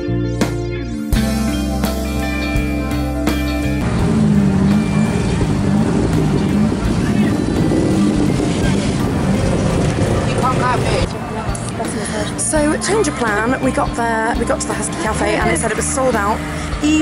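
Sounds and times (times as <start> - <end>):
background music: 0.0 - 17.0
road noise: 2.3 - 17.0
small engine running: 3.8 - 11.1.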